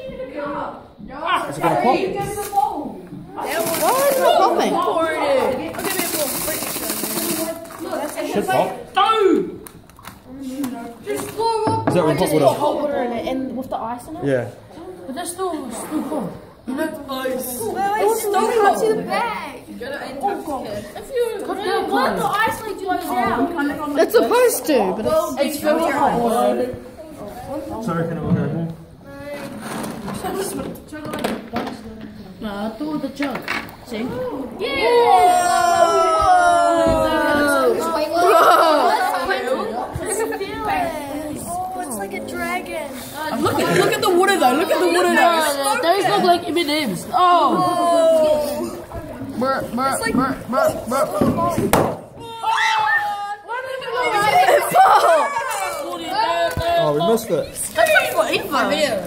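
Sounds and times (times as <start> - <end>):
excited voices talking: 0.0 - 28.0, 31.7 - 59.0
plastic bag rustling: 3.4 - 4.6, 5.7 - 8.3.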